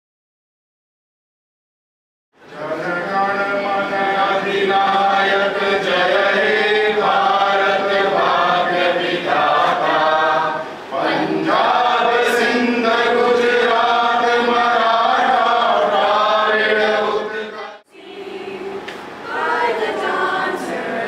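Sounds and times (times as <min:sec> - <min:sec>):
group singing an anthem: 0:02.5 - 0:21.0.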